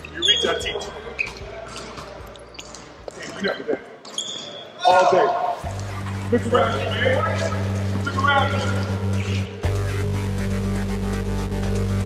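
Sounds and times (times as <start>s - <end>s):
low music drone: 5.6s - 12.0s.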